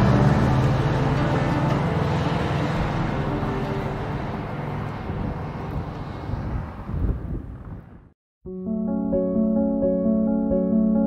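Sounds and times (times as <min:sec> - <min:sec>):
car engine low rumble: 0:00.0 - 0:08.1.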